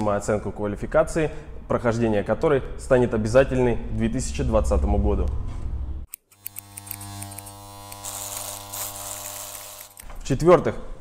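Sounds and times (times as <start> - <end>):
electric hair clippers buzzing: 6.1 - 10.1.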